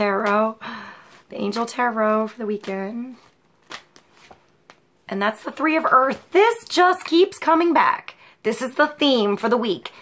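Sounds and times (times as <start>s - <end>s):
cards shuffled by hand: 1.1s - 4.9s.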